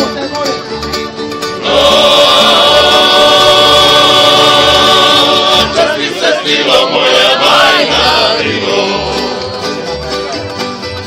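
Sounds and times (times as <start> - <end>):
plucked-string folk band playing: 0.0 - 11.0
group of voices singing: 1.5 - 10.4.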